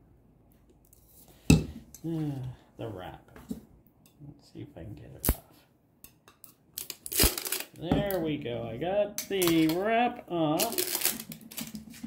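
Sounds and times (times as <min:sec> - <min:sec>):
plastic shrink wrap handling: 0:06.8 - 0:07.8, 0:10.5 - 0:12.0.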